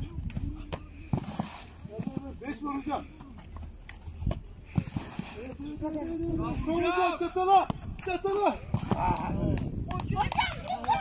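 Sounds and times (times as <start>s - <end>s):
thumps of feet and football: 0.0s - 5.9s, 7.6s - 10.5s.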